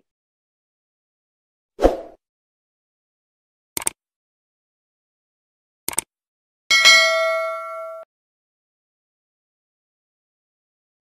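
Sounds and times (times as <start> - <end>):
notification bell ding: 6.7 - 8.1.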